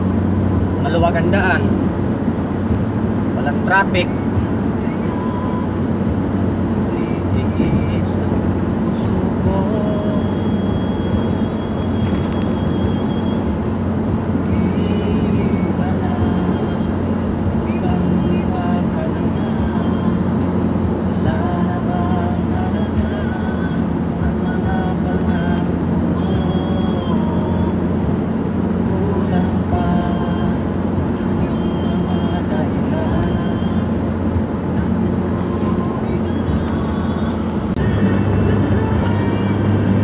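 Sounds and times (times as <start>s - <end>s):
car engine and tyre drone: 0.0s - 40.0s.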